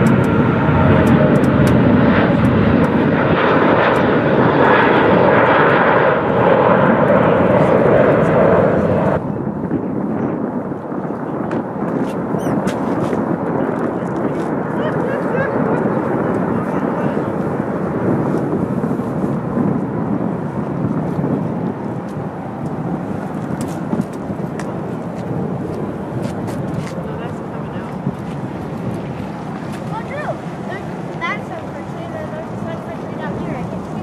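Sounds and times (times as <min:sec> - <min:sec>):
jet engine noise: 0:00.0 - 0:34.0.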